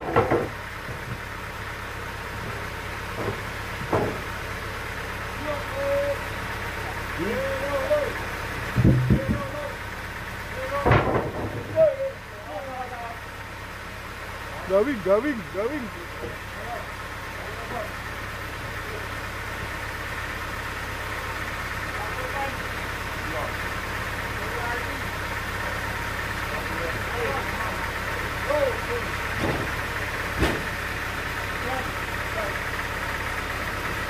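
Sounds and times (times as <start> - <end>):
log knocking on carriage: 0.0 - 1.2, 3.1 - 4.3, 8.7 - 9.6, 30.4 - 30.8
sawmill engine idling: 0.0 - 34.0.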